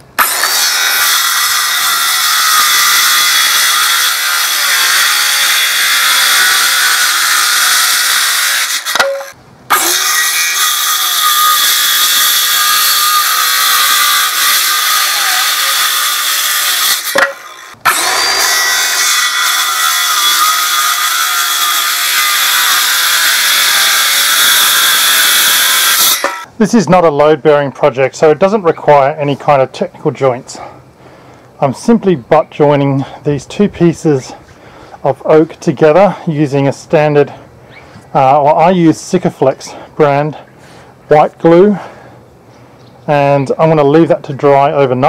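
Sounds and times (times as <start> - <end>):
circular saw cutting wood: 0.2 - 26.5.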